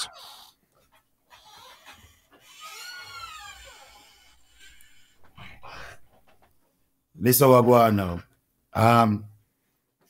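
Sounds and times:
dog whimpering: 0:00.0 - 0:05.2.

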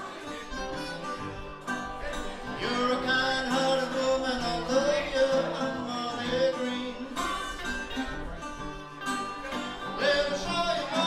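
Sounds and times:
acoustic guitars strummed and picked: 0:00.0 - 0:11.0
amplified harmonica: 0:00.0 - 0:11.0
resonator guitar: 0:00.0 - 0:11.0.

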